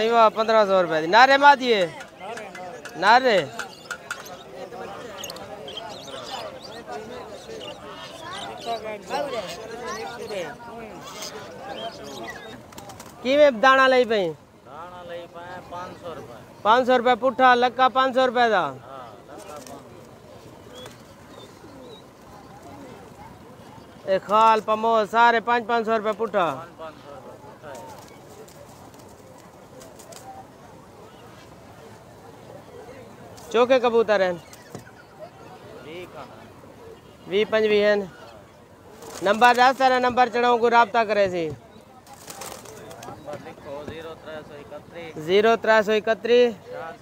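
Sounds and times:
faint people talking: 0.0s - 47.0s
pigeons cooing: 1.9s - 13.2s, 18.9s - 24.1s.

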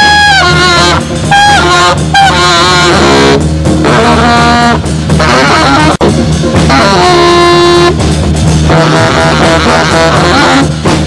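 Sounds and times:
rock band accompaniment: 0.0s - 11.0s
saxophone solo: 0.0s - 11.0s.

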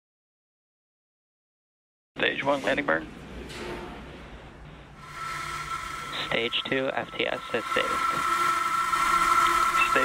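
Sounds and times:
steady high tone: 5.0s - 10.0s.

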